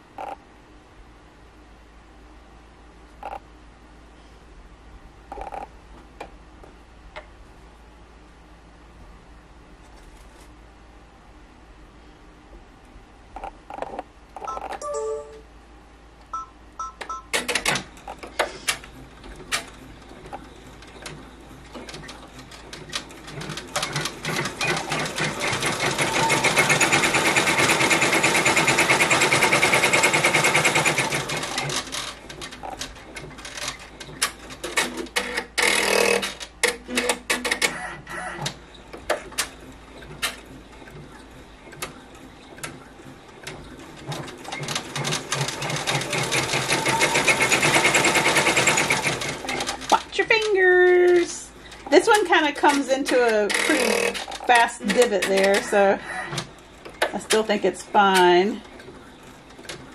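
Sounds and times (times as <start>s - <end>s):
embroidery machine stitching: 17.3s - 51.3s, 52.1s - 58.9s.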